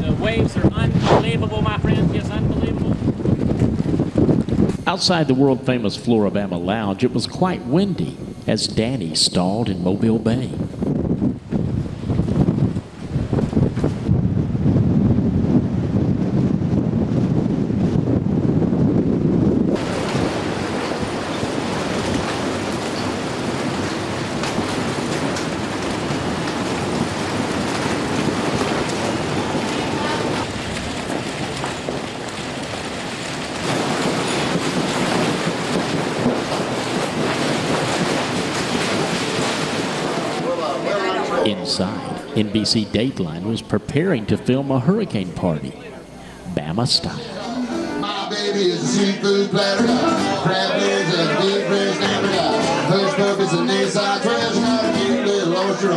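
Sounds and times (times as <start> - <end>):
surf: 0.0 - 5.0, 11.6 - 43.2, 45.7 - 55.9
wind buffeting microphone: 0.0 - 5.6, 9.8 - 40.6
storm wind: 0.0 - 47.2.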